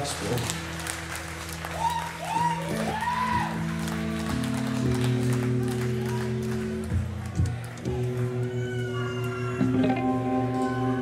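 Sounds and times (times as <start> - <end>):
crowd whooping and clapping: 0.0 - 11.0
droning electric guitar and bass: 2.6 - 11.0.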